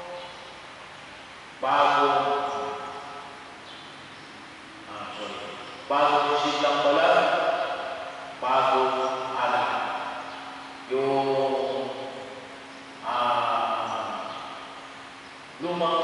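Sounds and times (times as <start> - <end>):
priest chanting over loudspeakers: 0.0 - 0.4, 1.6 - 3.4, 4.9 - 14.7, 15.6 - 16.0.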